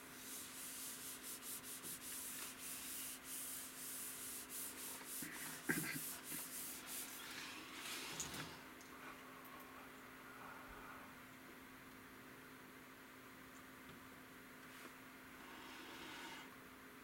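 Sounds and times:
palm rubbing on glass screen: 0.1 - 7.2.

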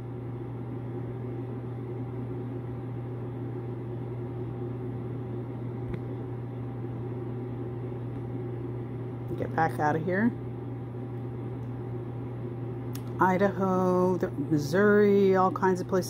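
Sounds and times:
low machine hum: 0.0 - 16.0.

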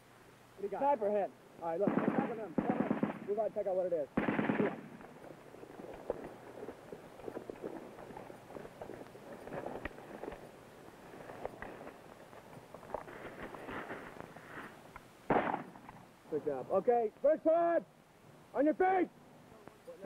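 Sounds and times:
rifle shots in rapid bursts: 1.8 - 3.5, 4.1 - 5.1, 15.3 - 15.8.

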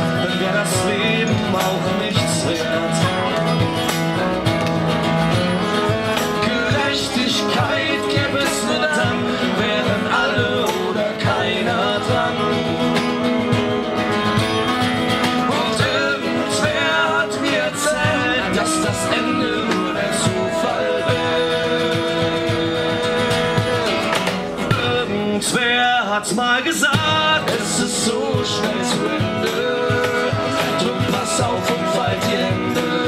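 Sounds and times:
cello: 0.0 - 24.8, 27.1 - 33.0
cajon beat: 0.0 - 33.0
strummed acoustic guitar: 0.0 - 33.0.

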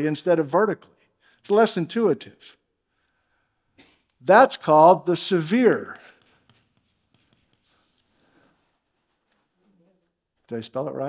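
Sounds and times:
chalk writing on chalkboard: 4.3 - 9.7.

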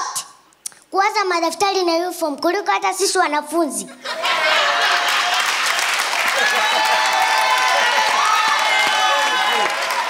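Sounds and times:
audience applause: 4.2 - 10.0.

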